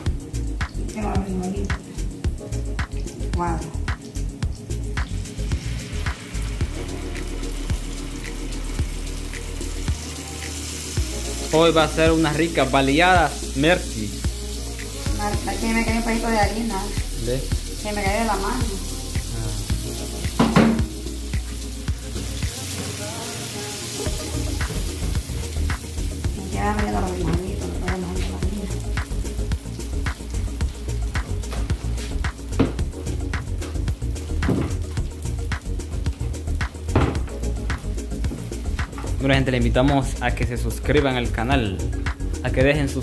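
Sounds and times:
background music with steady beat: 0:00.0 - 0:43.0
beans sizzling in hot oil: 0:00.0 - 0:43.0.

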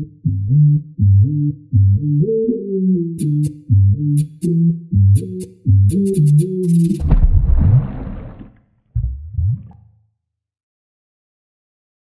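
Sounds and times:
stomach gurgling: 0:07.0 - 0:09.8.

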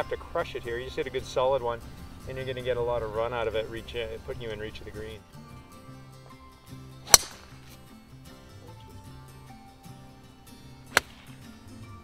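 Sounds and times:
background music: 0:00.0 - 0:12.0
golf club striking ball: 0:06.2 - 0:08.0, 0:10.8 - 0:11.6.

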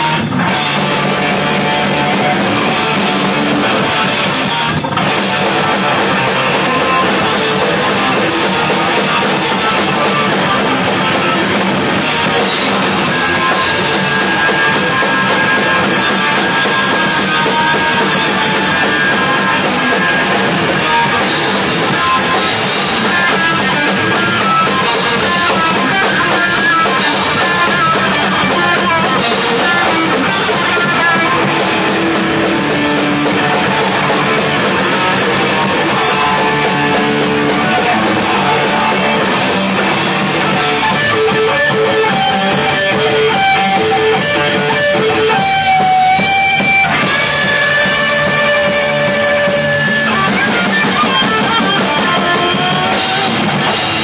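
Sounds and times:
electric guitar riff: 0:00.0 - 0:54.0
hardcore punk band playing live: 0:00.0 - 0:54.0.

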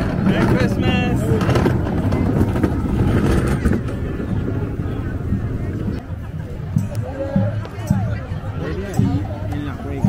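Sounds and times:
vehicle engine rumbling past: 0:00.0 - 0:06.1
crowd voices: 0:00.0 - 0:10.0.

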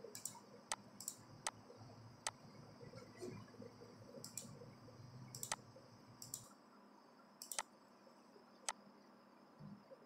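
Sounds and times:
computer mouse clicks: 0:00.1 - 0:01.6, 0:04.2 - 0:04.6, 0:05.3 - 0:05.6, 0:06.2 - 0:06.6, 0:07.4 - 0:07.7.

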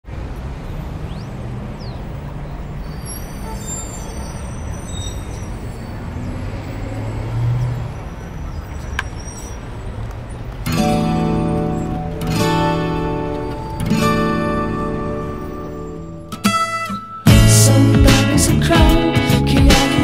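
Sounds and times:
road traffic rumble: 0:00.0 - 0:20.0.

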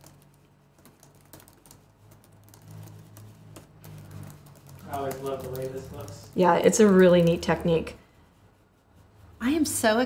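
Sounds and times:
stencil brush scratching: 0:00.0 - 0:10.0.

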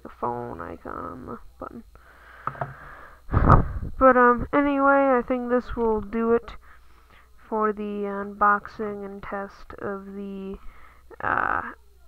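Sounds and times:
solid knock: 0:02.4 - 0:02.8.

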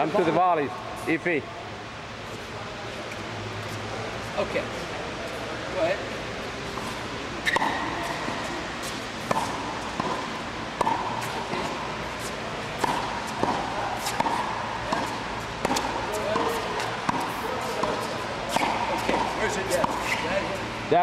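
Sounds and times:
tennis ball hitting racket: 0:06.7 - 0:20.4.

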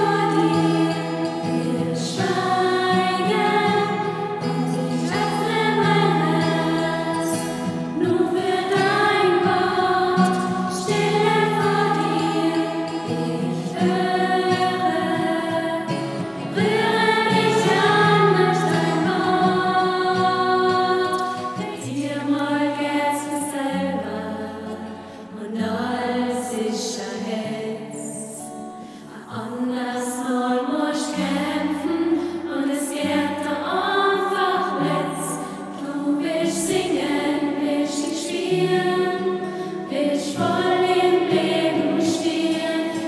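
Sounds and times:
women's choir singing: 0:00.0 - 0:43.0.

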